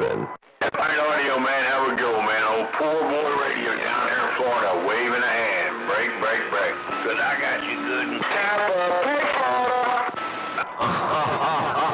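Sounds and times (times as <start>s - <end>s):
voice over radio speaker: 0.0s - 11.9s.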